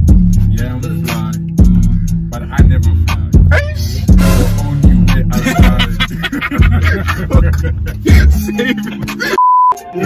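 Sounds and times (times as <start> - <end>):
hip-hop beat with deep bass: 0.0 - 10.0
censor bleep: 9.4 - 9.9.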